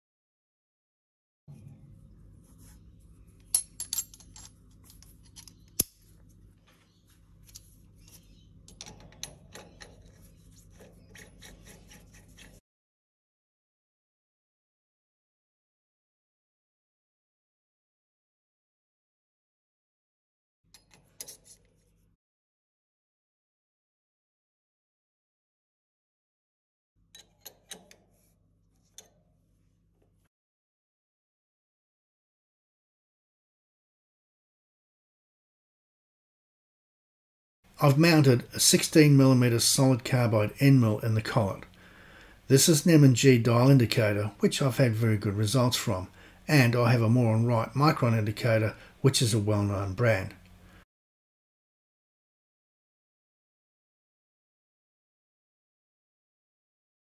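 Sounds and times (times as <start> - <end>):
faint low hum: 1.5 - 12.6
small metal clicks and scrapes: 7.4 - 12.6, 20.7 - 21.8, 27.1 - 29.2
spanner metal clicks: 8.7 - 10.2, 27.1 - 28.1.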